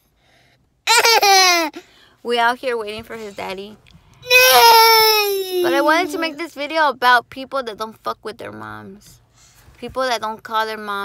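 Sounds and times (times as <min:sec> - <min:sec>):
toddler laughing: 0:00.9 - 0:01.8, 0:04.3 - 0:06.4.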